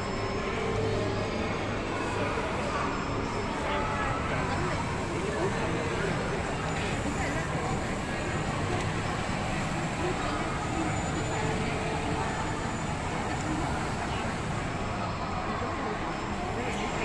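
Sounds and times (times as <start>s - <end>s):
indistinct chatter: 0.0s - 17.0s.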